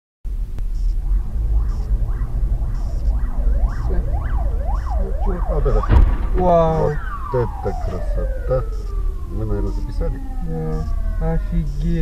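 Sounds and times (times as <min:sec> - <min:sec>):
car engine rumble: 0:00.3 - 0:12.0
siren yelping: 0:00.7 - 0:12.0
loud bang: 0:05.8 - 0:08.0.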